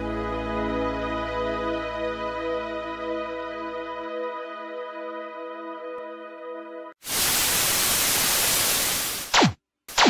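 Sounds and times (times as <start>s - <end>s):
tv static hiss: 7.0s - 9.5s.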